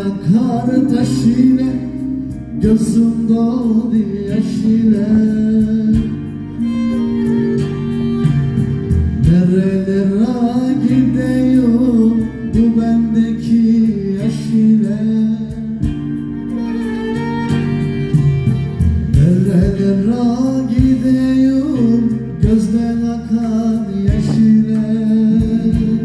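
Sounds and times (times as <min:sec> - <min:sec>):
man singing into microphone: 0:00.0 - 0:07.0, 0:09.2 - 0:16.2, 0:19.1 - 0:26.0
keyboard and strings playing folk song: 0:00.0 - 0:26.0.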